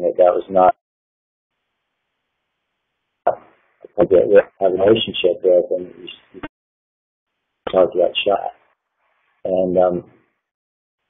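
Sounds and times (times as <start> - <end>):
man speaking: 0.0 - 0.8, 3.3 - 6.5, 7.7 - 8.6, 9.5 - 10.2.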